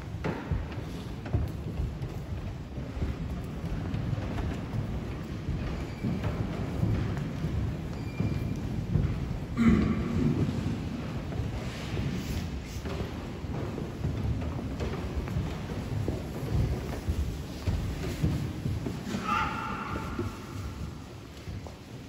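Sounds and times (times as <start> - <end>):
handling rumble and rustle: 0.0 - 22.0
people shuffling: 0.0 - 22.0.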